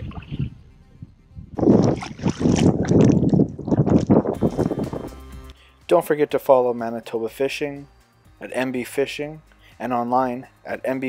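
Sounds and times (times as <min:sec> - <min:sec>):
hands splashing in water: 0:00.0 - 0:00.5, 0:01.6 - 0:04.4
water dripping: 0:01.7 - 0:04.4.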